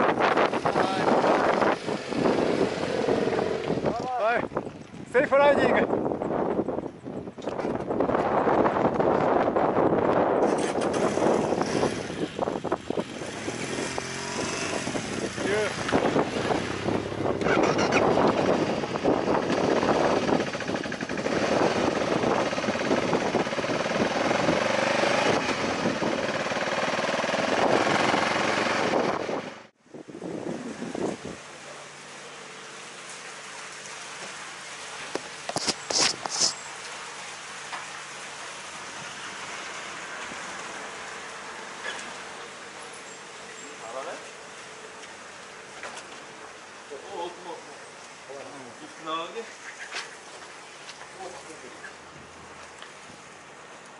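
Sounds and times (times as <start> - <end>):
motorcycle engine: 0.0 - 4.2, 10.4 - 29.8
wind noise on microphone: 0.0 - 31.6, 35.0 - 36.6.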